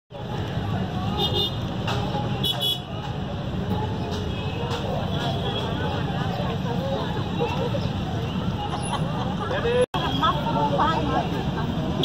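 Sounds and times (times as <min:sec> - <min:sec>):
faint voices: 0:00.1 - 0:12.0
street traffic: 0:00.1 - 0:12.0.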